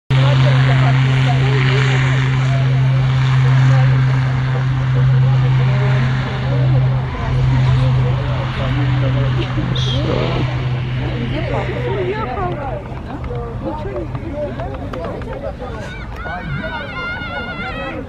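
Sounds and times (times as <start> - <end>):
low engine drone: 0.1 - 18.0
people's voices: 0.1 - 18.0.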